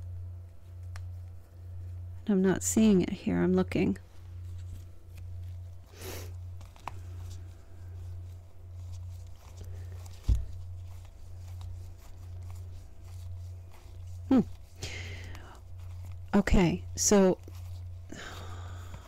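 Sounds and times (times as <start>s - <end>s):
steady low hum: 0.0s - 19.0s
cards rustling: 4.4s - 19.0s.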